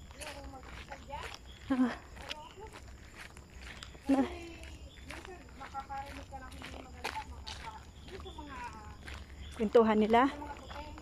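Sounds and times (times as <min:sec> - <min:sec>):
women talking: 0:00.0 - 0:03.2, 0:03.8 - 0:11.0
soft footsteps on concrete: 0:00.0 - 0:11.0.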